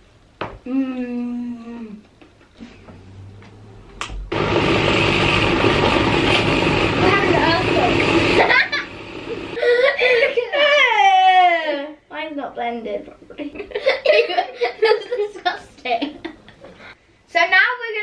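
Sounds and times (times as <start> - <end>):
jug blender running: 4.3 - 9.6.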